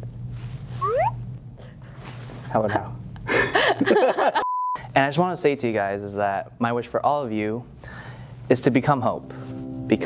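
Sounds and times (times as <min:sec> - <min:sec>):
low electrical hum: 0:00.0 - 0:10.0
person's rising ooh vocal sound: 0:00.8 - 0:01.2.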